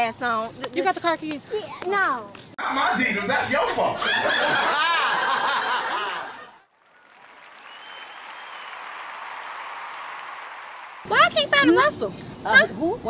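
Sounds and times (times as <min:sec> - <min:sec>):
people laughing loudly: 0:02.6 - 0:06.6.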